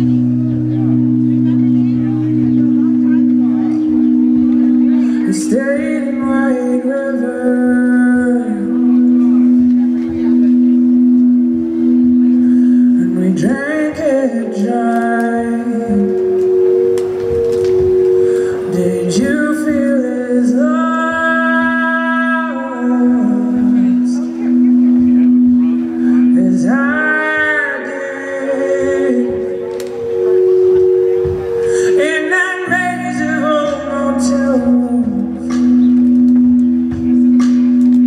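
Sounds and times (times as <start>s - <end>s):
woman singing: 4.9s - 9.0s, 13.0s - 16.4s, 18.5s - 24.5s, 26.1s - 29.9s, 31.3s - 35.5s.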